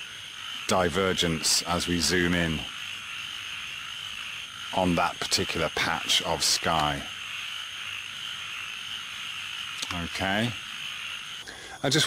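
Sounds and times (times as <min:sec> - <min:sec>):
frogs calling: 0:00.0 - 0:12.0.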